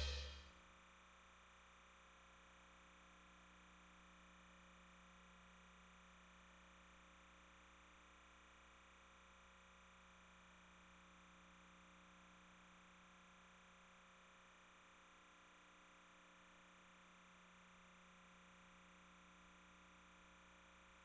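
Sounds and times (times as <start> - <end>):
broadcast music: 0.0 - 0.4.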